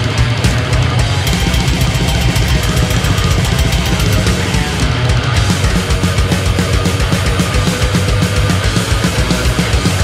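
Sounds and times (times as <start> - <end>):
distorted electric guitars: 0.0 - 10.0
fast dense drumming: 0.0 - 10.0.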